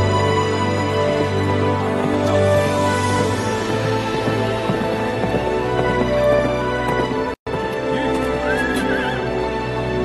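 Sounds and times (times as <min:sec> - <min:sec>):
background music: 0:00.0 - 0:10.0
hoofbeats: 0:00.8 - 0:09.2.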